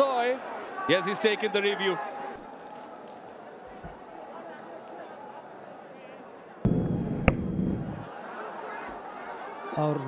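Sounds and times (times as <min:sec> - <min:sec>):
field noise: 0:06.6 - 0:08.2
ball striking bat click: 0:07.2 - 0:07.5.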